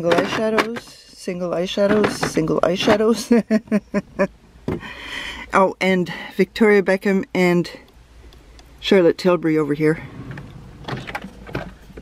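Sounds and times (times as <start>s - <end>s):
drawer scraping: 10.0s - 12.0s
drawer sliding shut: 10.0s - 12.0s.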